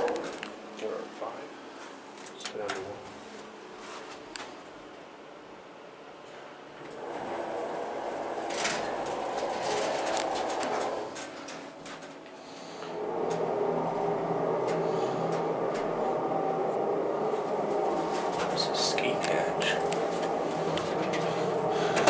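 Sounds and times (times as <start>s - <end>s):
elevator pump motor humming: 0.0s - 22.0s.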